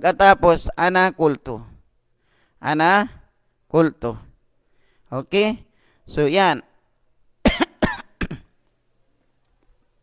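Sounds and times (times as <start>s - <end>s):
man coughing: 7.4s - 8.6s.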